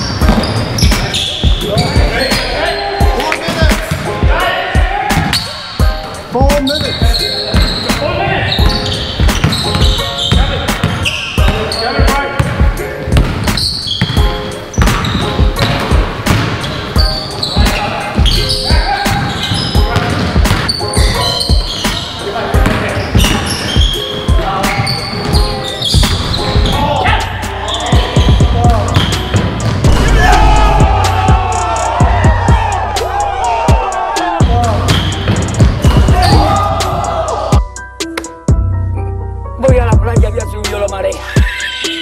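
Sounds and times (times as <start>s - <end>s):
basketball bouncing on wooden floor: 12.4s - 14.2s, 20.0s - 20.8s, 22.6s - 24.0s.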